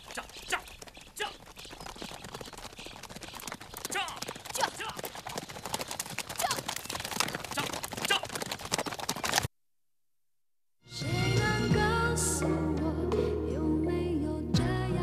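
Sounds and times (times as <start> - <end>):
horses galloping on dirt: 0.0 - 9.5.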